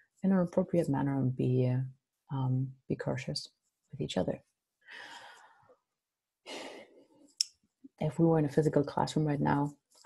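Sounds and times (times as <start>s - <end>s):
woman breathing softly: 4.9s - 5.6s.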